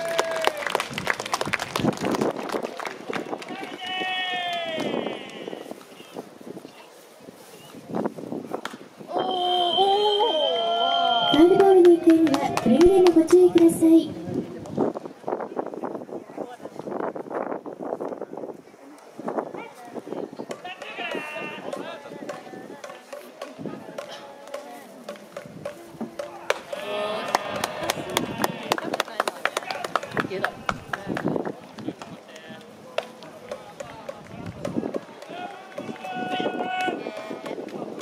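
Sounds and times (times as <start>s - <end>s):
voices at a ballpark: 0.0s - 38.0s
high drawn-out wavering call: 9.1s - 11.6s.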